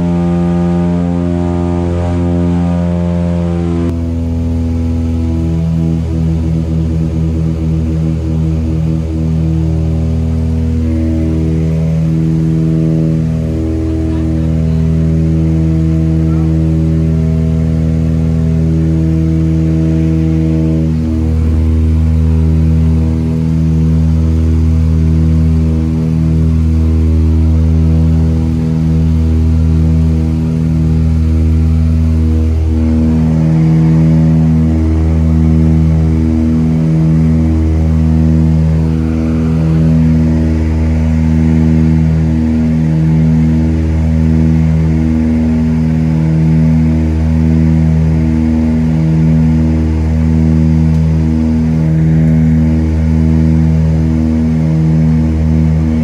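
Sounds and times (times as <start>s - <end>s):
propeller engines droning: 0.0s - 56.0s.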